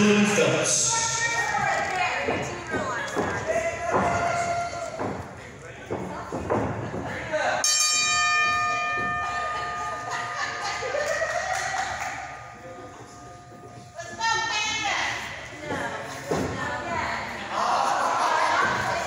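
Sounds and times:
crowd voices and shouts: 0.0 - 7.8, 11.0 - 19.0
ring bell ringing: 7.6 - 15.3.

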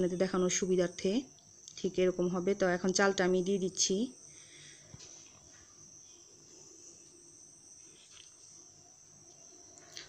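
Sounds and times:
faint high-pitched whine: 0.0 - 10.0.

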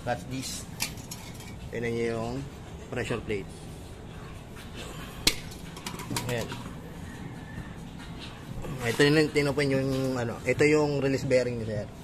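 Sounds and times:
metal parts knocking on concrete: 5.3 - 6.5.

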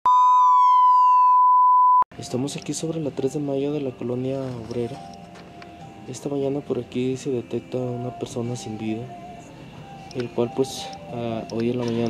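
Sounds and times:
heart monitor flatline beep: 0.1 - 2.0.

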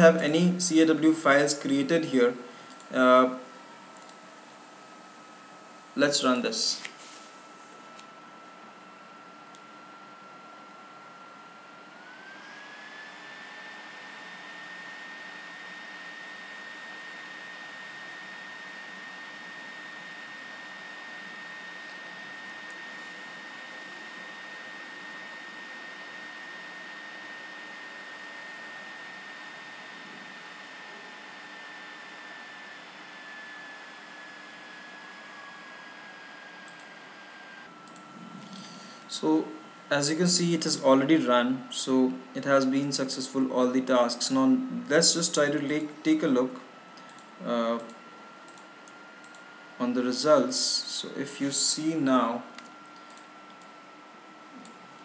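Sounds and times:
computer fan whirring: 0.0 - 55.0.

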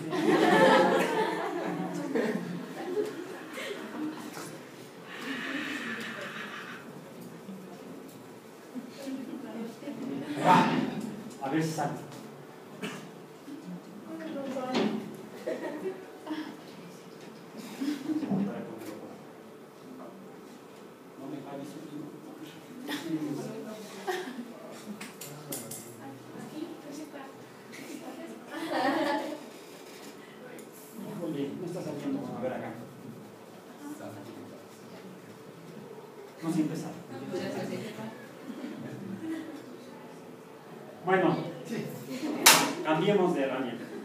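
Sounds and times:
murmuring and chuckling: 0.0 - 7.0.

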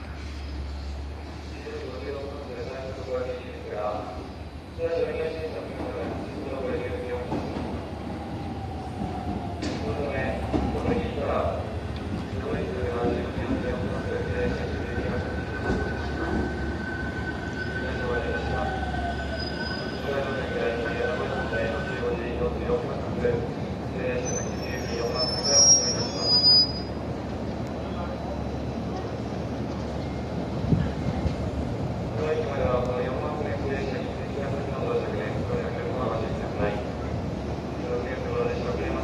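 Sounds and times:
train wheels rumbling on track: 0.0 - 39.0
train brakes squealing: 15.2 - 22.0, 24.1 - 27.0.

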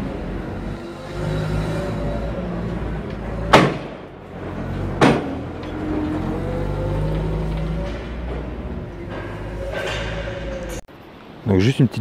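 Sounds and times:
forklift engine running: 0.0 - 10.8.

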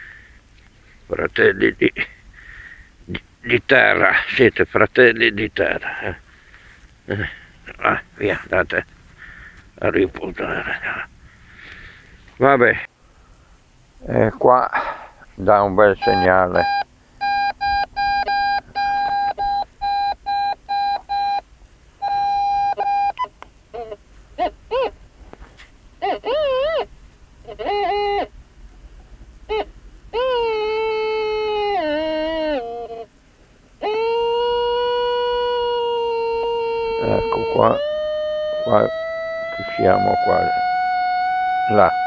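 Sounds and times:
metal detector short beeps: 16.0 - 21.4, 22.0 - 23.3
metal detector wobbling tones: 16.0 - 21.4, 22.0 - 24.9, 27.5 - 28.3, 29.5 - 33.0, 33.8 - 42.0.

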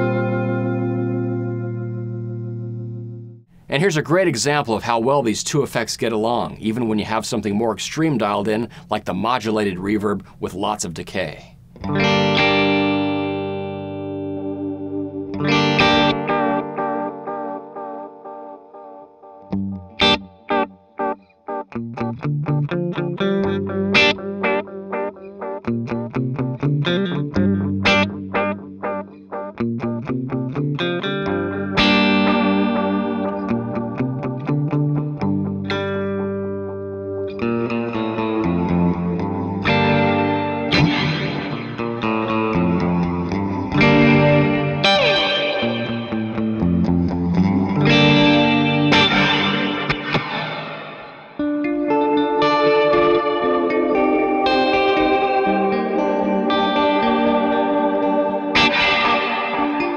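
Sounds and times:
electric guitar with delay and reverb: 0.0 - 3.4, 11.7 - 59.9.

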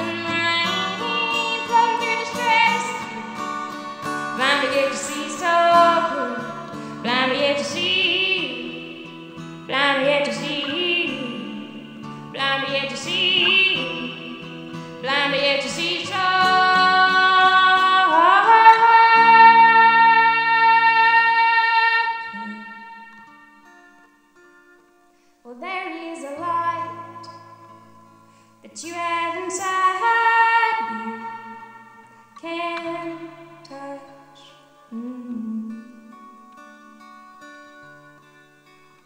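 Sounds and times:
acoustic guitar: 0.0 - 39.0.

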